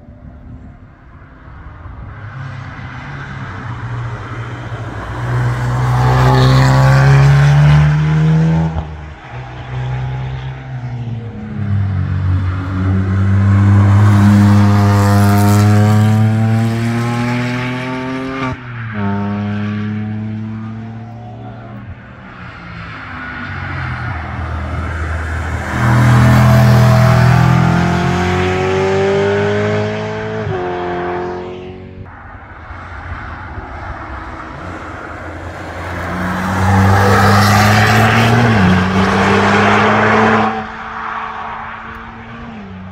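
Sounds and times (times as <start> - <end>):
cars passing at speed: 0.2 - 42.9
engines revving with upshifts: 10.9 - 22.0, 22.6 - 32.1.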